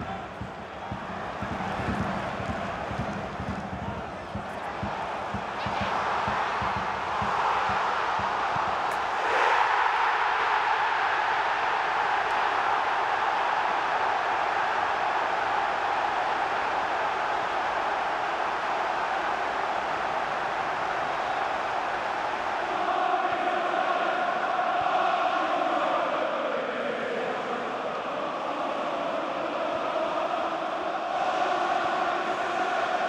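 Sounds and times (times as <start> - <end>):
stadium crowd cheering: 0.0 - 33.0.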